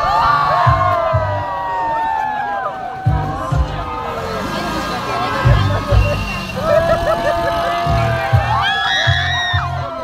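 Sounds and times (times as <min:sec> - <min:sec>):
loud fair music with bass: 0:00.0 - 0:10.0
people shouting on a ride: 0:00.0 - 0:10.0.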